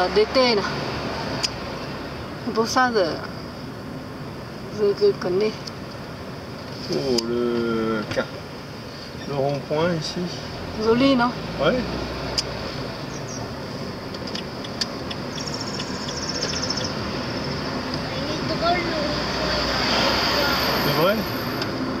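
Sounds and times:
oncoming traffic passing: 0.0 - 22.0
road and engine noise inside car: 0.0 - 22.0.

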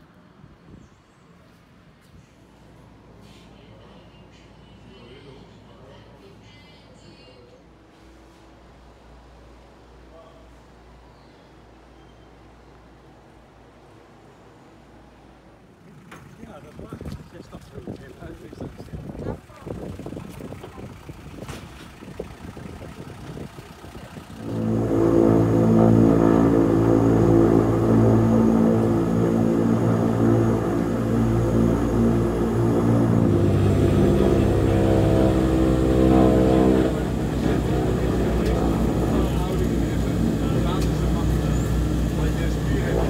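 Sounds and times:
turboprop engines running: 12.5 - 43.0
low pulsing: 22.2 - 43.0.

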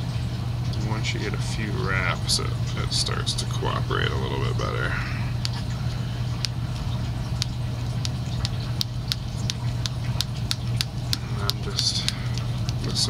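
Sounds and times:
steady low hum: 0.0 - 13.0
thread winding ticks: 7.4 - 13.0.

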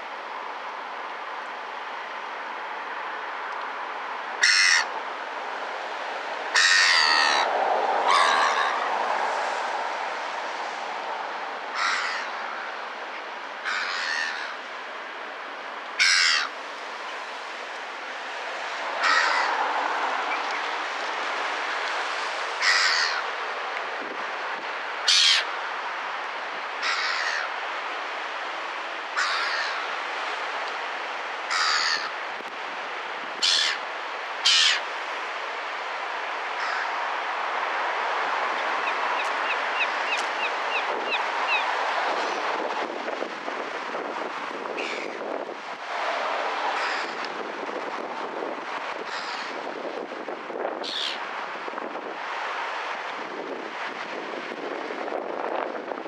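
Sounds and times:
gulls calling: 6.5 - 9.0, 33.4 - 34.9, 38.5 - 42.5, 50.8 - 51.2.

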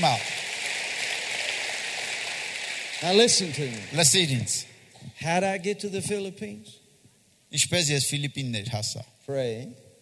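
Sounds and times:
crowd applauding: 0.0 - 4.8.

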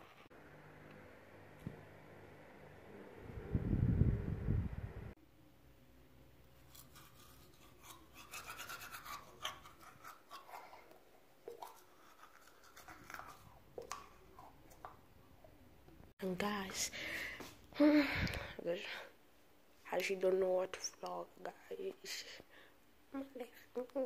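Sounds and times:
loud low rumble: 3.1 - 5.1
toothbrush scrubbing teeth: 6.6 - 15.0.

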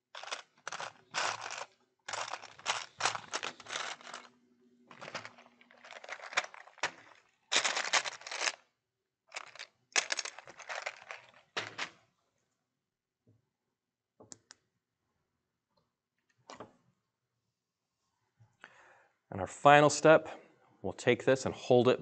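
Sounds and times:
plastic bricks rattling in tray: 0.1 - 4.3, 4.9 - 8.6, 9.3 - 11.9.

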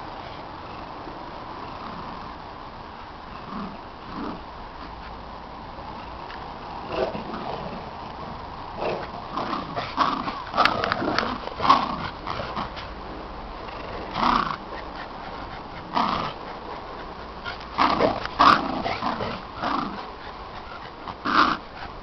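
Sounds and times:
dogs barking: 14.1 - 22.0.

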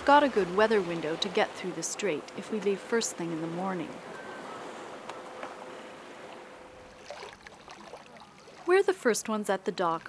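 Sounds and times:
water rushing along a hull: 0.0 - 10.0.

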